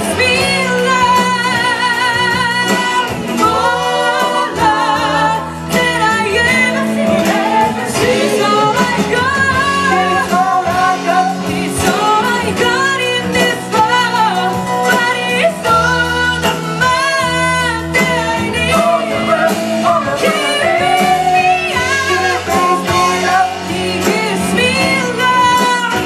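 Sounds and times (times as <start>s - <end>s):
singers singing with vibrato: 0.0s - 26.0s
soul band accompaniment: 0.0s - 26.0s.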